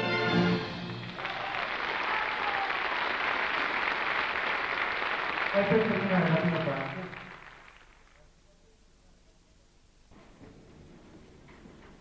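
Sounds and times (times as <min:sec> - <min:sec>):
audience applauding: 0:00.6 - 0:08.3.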